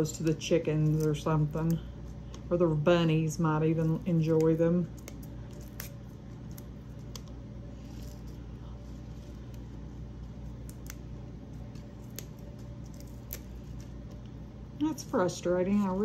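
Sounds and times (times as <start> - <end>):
parsley leaves snapping and rustling: 0.0 - 16.0.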